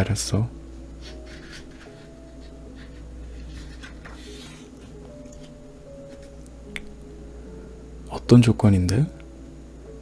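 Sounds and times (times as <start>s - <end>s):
soft background music: 0.0s - 10.0s
book pages rustling: 1.0s - 6.4s.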